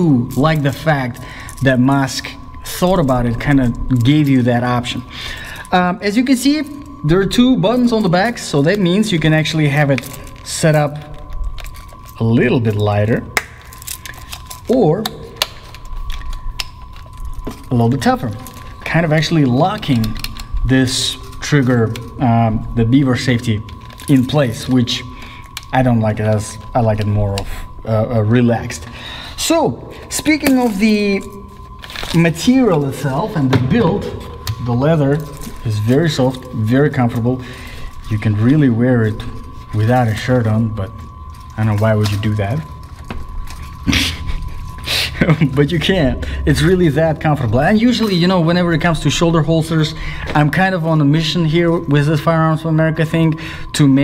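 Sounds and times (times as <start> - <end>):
steady low hum: 0.0 - 54.0
thin high whine: 0.0 - 54.0
man chuckling: 43.9 - 45.6.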